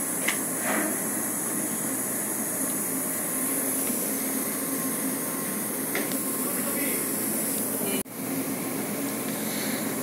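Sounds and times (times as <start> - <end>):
ventilation hiss: 0.0 - 10.0.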